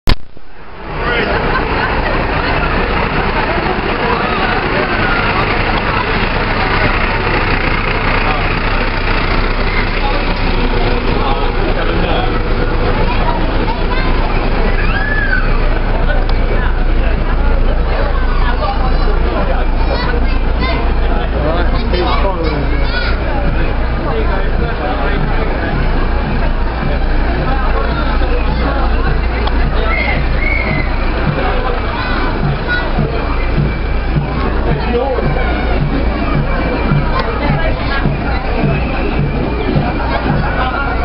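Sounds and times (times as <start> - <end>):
fire engine running at low revs: 0.1 - 41.0
people chatting: 0.7 - 41.0.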